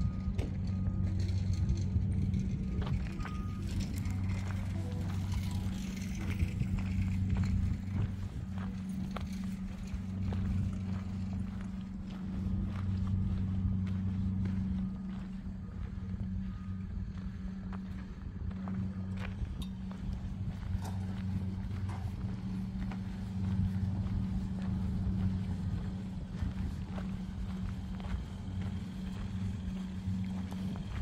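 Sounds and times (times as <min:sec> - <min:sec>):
steady low hum: 0:00.0 - 0:31.0
footsteps on gravel: 0:02.2 - 0:31.0.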